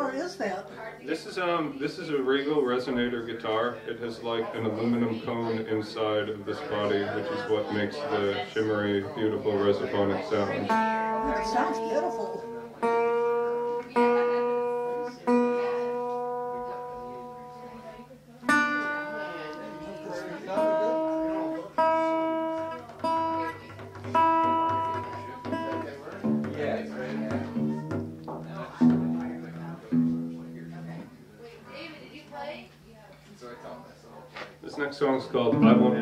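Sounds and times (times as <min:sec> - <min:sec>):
fingerpicked resonator guitar: 0:02.0 - 0:31.9, 0:34.8 - 0:36.0.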